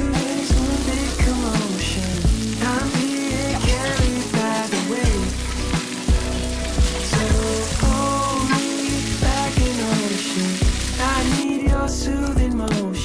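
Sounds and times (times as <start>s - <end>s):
meat sizzling on a grill: 0.0s - 11.4s
background music with bass line: 0.0s - 13.0s.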